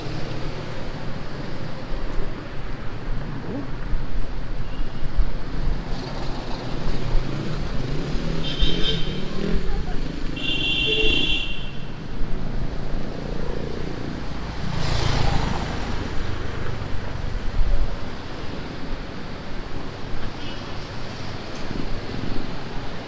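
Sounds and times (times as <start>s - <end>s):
road traffic rumble: 0.0s - 23.0s
vehicle passing close: 13.6s - 16.9s.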